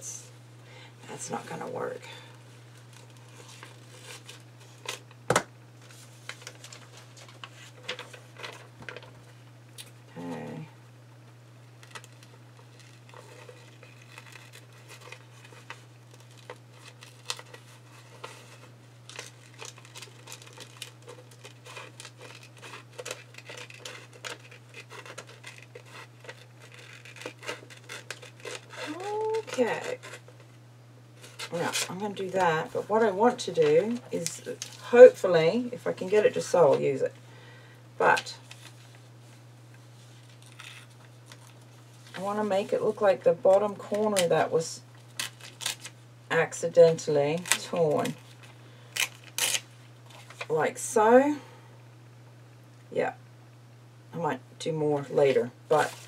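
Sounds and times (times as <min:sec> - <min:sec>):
steady low hum: 0:00.0 - 0:56.0
paper rustling and crinkling: 0:02.7 - 0:05.2, 0:05.8 - 0:09.4, 0:11.8 - 0:30.5, 0:31.2 - 0:35.0, 0:38.4 - 0:42.9, 0:45.0 - 0:46.0, 0:47.4 - 0:50.5, 0:55.7 - 0:56.0.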